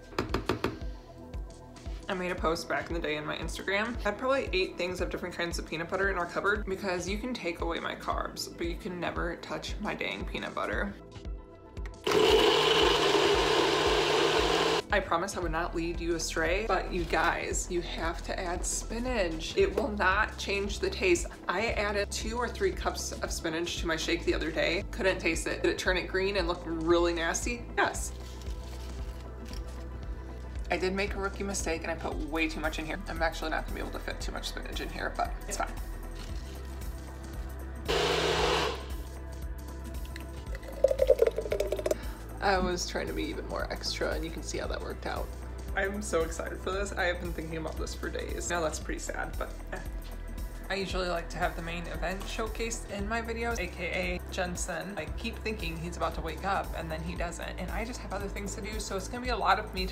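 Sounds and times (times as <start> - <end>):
faint background music: 0.0 - 59.9
blender blending ice: 12.0 - 14.8, 37.9 - 39.0.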